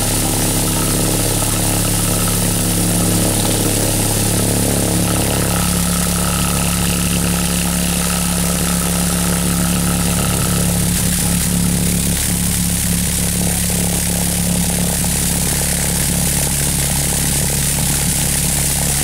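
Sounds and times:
loudspeaker low-pitched hum: 0.0s - 19.0s.

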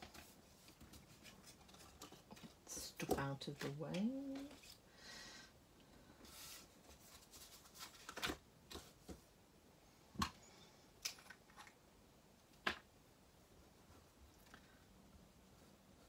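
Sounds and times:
paper sliding and rustling: 6.2s - 9.0s.

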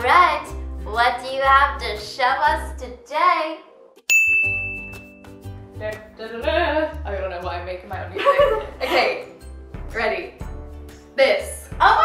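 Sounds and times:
bell ding: 4.1s - 5.4s.

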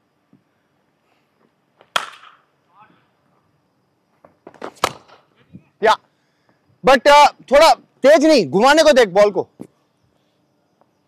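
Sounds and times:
cricket bat striking ball: 1.8s - 2.5s, 4.5s - 5.3s.

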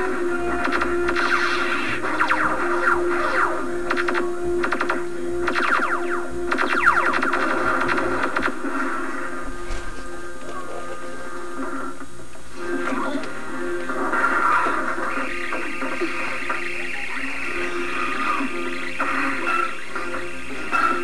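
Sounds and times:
film soundtrack music: 0.0s - 21.0s.

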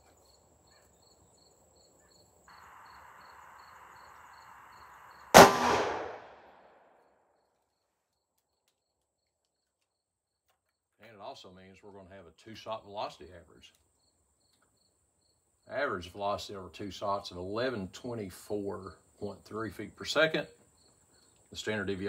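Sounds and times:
faint crickets chirping: 0.0s - 5.4s, 7.3s - 22.0s
revolver gunshot: 5.3s - 6.8s.

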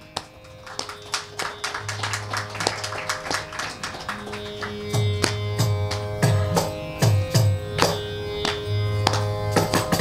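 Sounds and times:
steady drone: 0.2s - 10.0s.

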